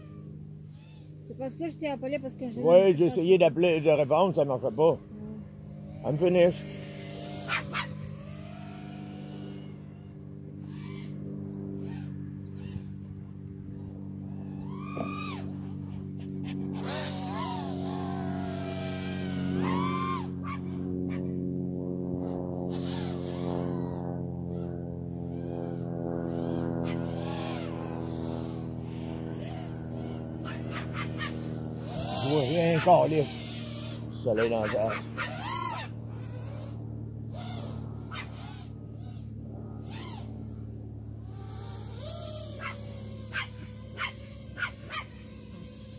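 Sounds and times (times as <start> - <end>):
drone propellers humming: 0.0 - 45.9
dog whining: 14.3 - 15.5, 30.4 - 31.4, 38.1 - 38.4, 42.6 - 45.1.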